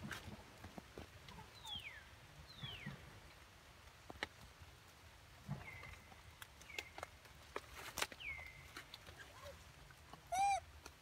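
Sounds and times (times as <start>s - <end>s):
light clicks and rustles: 2.9s - 11.0s.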